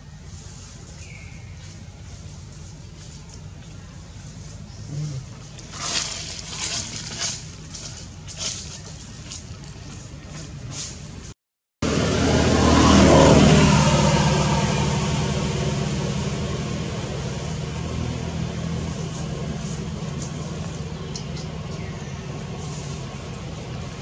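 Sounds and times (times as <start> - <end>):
vehicle engine passing by: 11.8 - 24.0.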